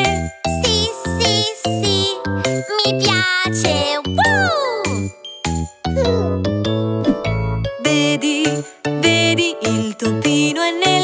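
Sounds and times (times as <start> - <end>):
children's song music: 0.0 - 11.0.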